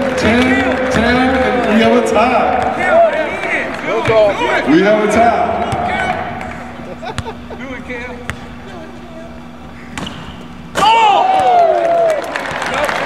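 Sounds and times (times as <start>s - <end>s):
loud voices: 0.0s - 8.0s
low steady hum: 0.0s - 13.0s.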